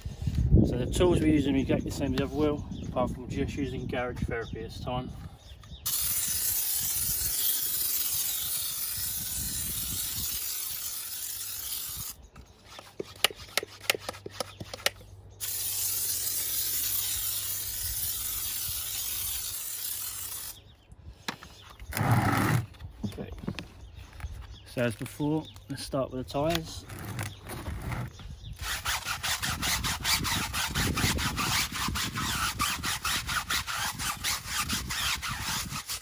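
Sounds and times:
foam sprayer hissing: 5.9 - 12.1.

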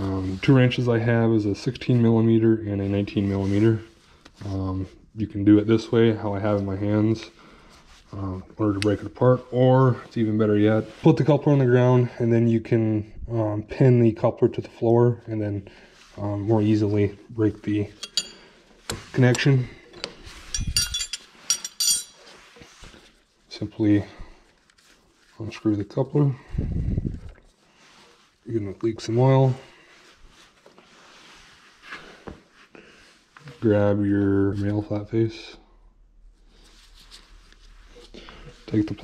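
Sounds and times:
gloved hands handling metal coupler: 17.9 - 23.2
metal wrenches clinking: 18.0 - 18.4, 19.9 - 22.3.

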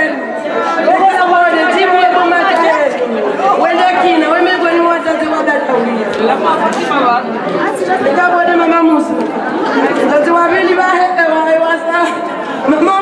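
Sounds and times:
overlapping chatter of voices: 0.0 - 13.0.

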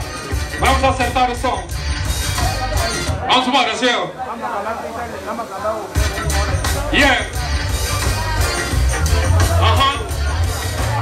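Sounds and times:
hip-hop beat: 0.0 - 3.5, 5.9 - 11.0
loudspeaker hiss: 0.0 - 11.0
voices talking: 0.0 - 11.0.

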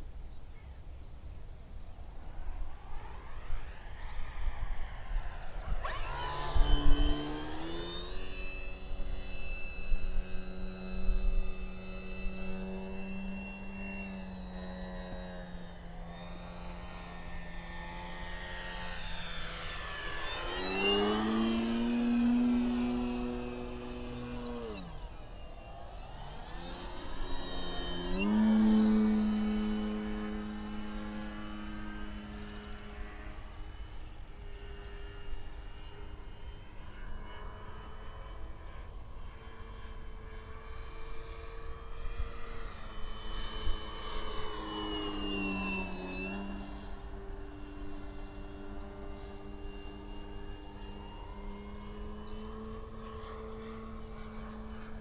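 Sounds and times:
model plane propeller buzzing: 0.0 - 55.0.

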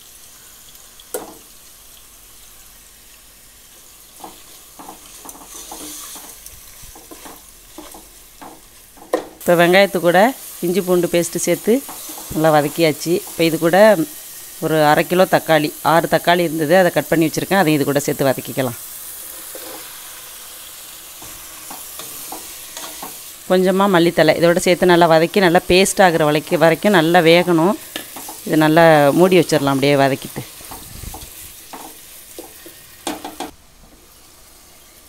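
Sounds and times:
onions sizzling in hot oil: 0.0 - 35.0
spatula scraping pot: 4.2 - 8.7, 11.8 - 12.4, 19.3 - 20.0.

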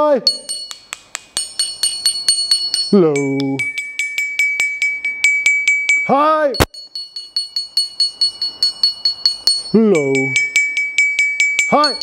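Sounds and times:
xylophone bar struck rapidly: 0.3 - 12.0.

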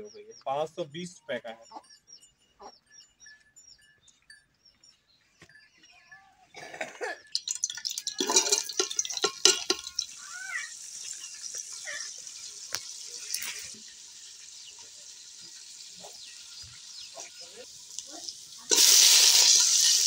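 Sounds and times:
small birds chirping: 0.0 - 6.6, 7.2 - 18.8
onions sizzling in hot oil: 7.3 - 20.0
ladle knocking against pot: 7.4 - 10.1.

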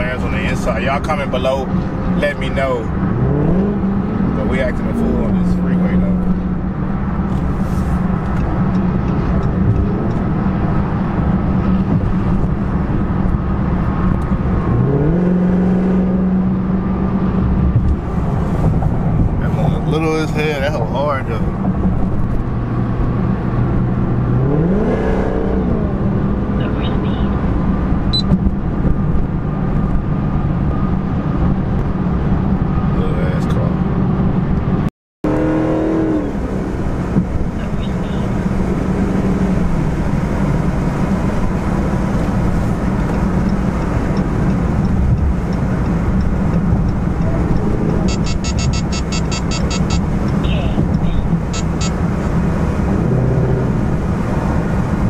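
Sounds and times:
car engine droning: 0.0 - 55.0
road and tyre noise: 0.0 - 55.0.

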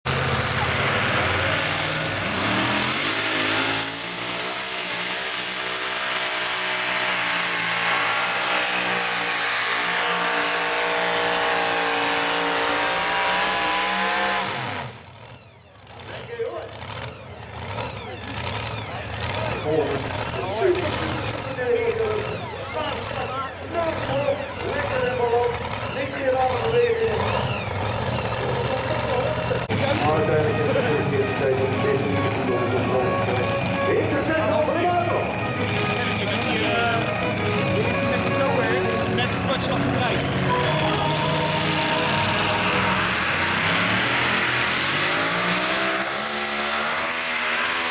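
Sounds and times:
truck engine at full throttle: 0.0 - 47.9
voices: 15.4 - 43.4.

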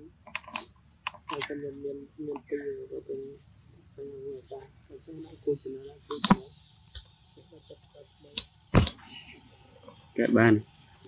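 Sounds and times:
low voice: 1.3 - 6.5, 10.2 - 10.6.

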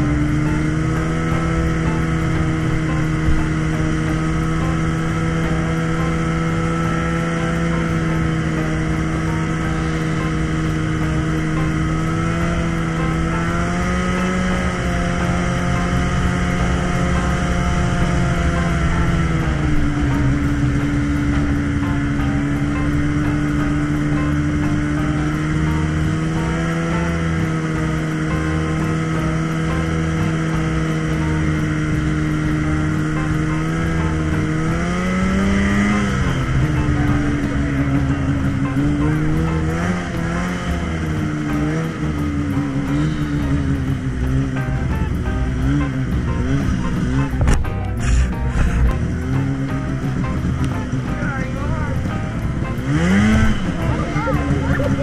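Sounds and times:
snowmobile engine running: 0.0 - 55.0.

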